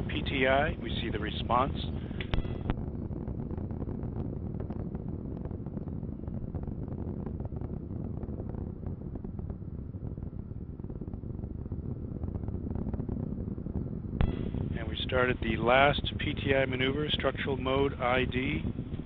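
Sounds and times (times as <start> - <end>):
rocket motor rumbling and crackling: 0.0 - 19.0.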